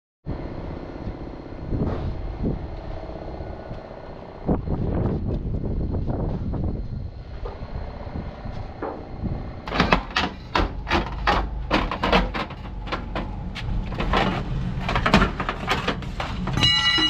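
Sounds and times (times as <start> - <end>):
engine running steadily: 0.3 - 17.0
irregular knocks and clatter: 9.7 - 16.7.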